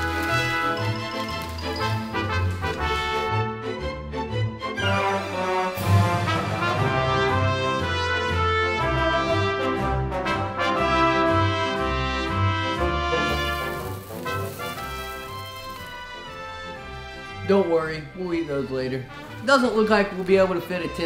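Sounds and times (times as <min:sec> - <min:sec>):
brass background music: 0:00.0 - 0:21.0.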